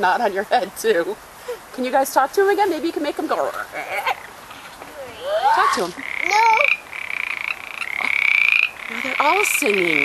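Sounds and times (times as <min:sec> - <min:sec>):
frogs calling in pulsed trills: 0:05.1 - 0:10.0.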